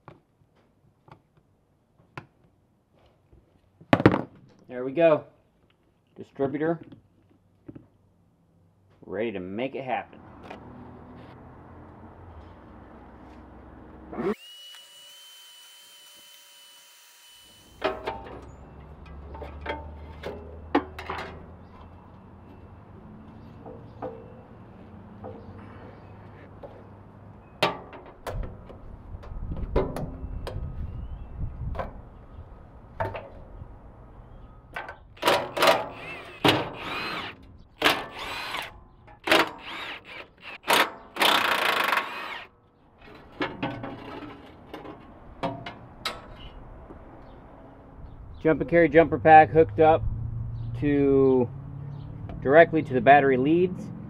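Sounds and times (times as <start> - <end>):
power drill running: 14.2 - 17.9, 35.9 - 38.7, 39.3 - 42.5.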